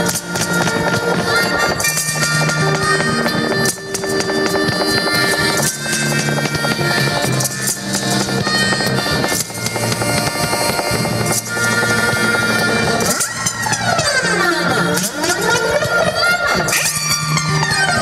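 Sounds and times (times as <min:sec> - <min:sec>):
harmonica playing long notes: 0:00.0 - 0:18.0
live music backing: 0:00.0 - 0:18.0
sliding swirl of tones: 0:00.0 - 0:18.0.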